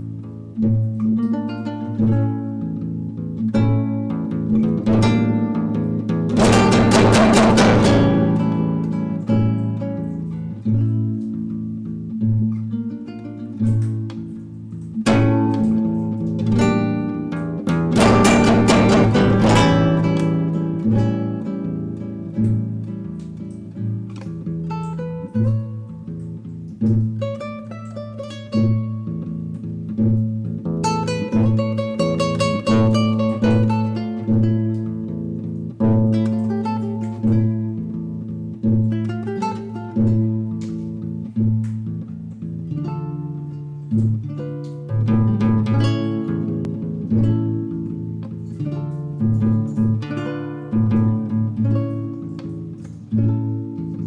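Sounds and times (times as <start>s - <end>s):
classical guitar fingerstyle: 0.0s - 54.0s
fast strummed guitar chords: 3.4s - 10.9s, 13.6s - 27.7s.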